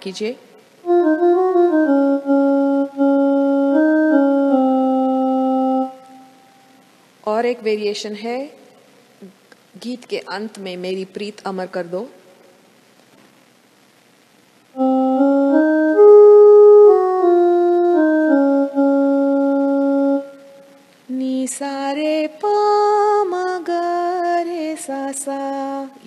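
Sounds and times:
electronic keyboard melody: 0.8s - 6.6s, 14.8s - 20.8s
woman singing: 21.1s - 26.0s.

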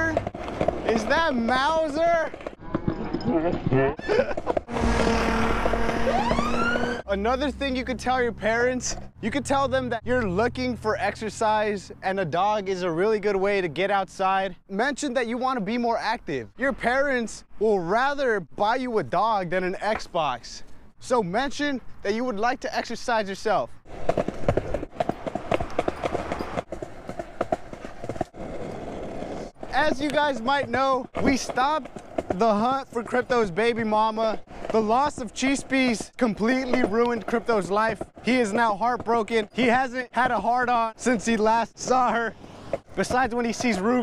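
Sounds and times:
road noise: 0.0s - 2.8s, 4.0s - 44.0s
wheels rolling over pavement: 0.0s - 14.0s, 22.9s - 44.0s
car passing: 4.6s - 11.5s, 23.9s - 29.6s
rising wail: 4.7s - 7.1s.

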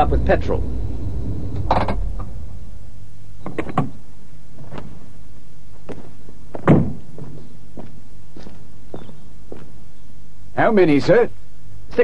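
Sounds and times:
steady low hum: 0.0s - 12.0s
footsteps on hard surface: 4.6s - 9.8s.

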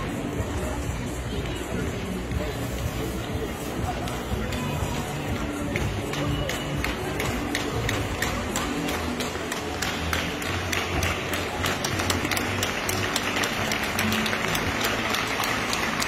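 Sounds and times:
crowd noise: 0.0s - 16.0s
music over sound system: 0.0s - 16.0s
hand clapping: 4.0s - 16.0s.

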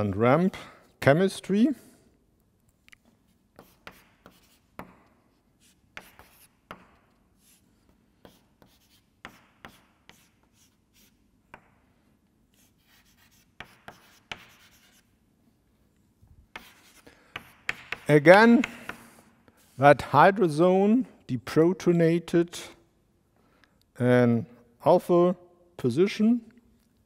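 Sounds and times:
chalk tapping and scratching on blackboard: 3.2s - 15.2s, 16.5s - 19.8s.

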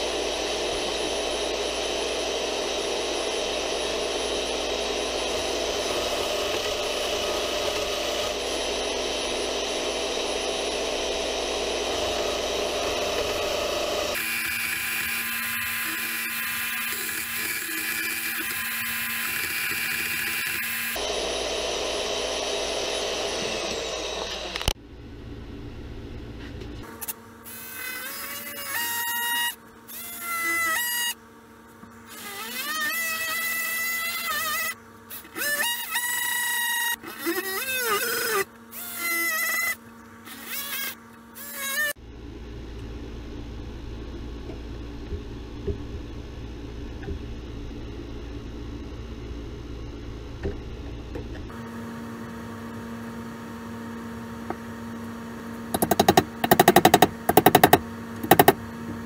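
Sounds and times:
band saw cutting metal: 0.0s - 24.8s, 55.7s - 58.6s
oscillating multi-tool buzzing: 0.0s - 24.8s, 26.8s - 31.2s, 32.0s - 42.0s, 55.7s - 58.6s.

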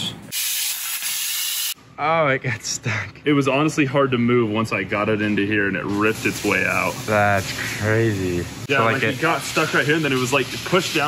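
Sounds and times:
high-pressure waterjet hissing: 0.3s - 1.8s, 6.0s - 11.0s.

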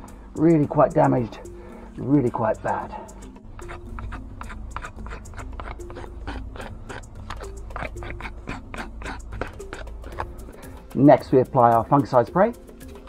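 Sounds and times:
knife scraping bark: 2.3s - 11.7s.

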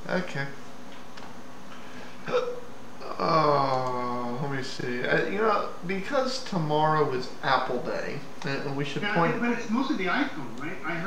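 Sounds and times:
room and microphone hiss: 0.0s - 11.0s
person saying uh: 2.3s - 5.5s.

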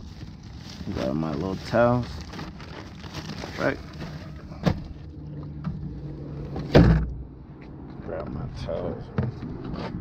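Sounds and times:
loud dull thump: 6.6s - 7.2s.

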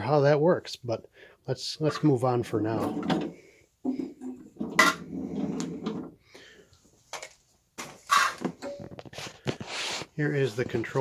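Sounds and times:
vacuum parts rubbing and rattling: 2.6s - 6.2s, 8.0s - 11.0s.

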